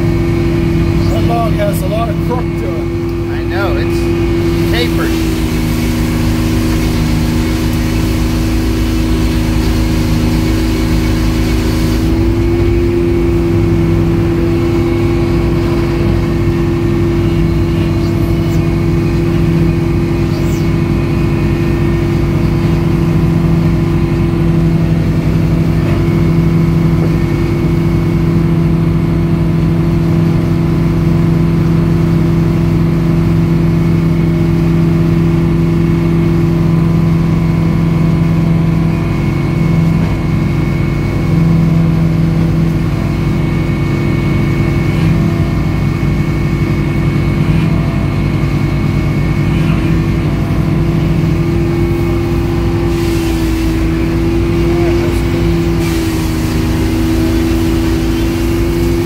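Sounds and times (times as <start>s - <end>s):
sawmill engine running: 0.0s - 59.0s
saw blade cutting hiss: 4.4s - 12.2s, 52.0s - 59.0s
free-spinning saw blade: 4.4s - 12.6s.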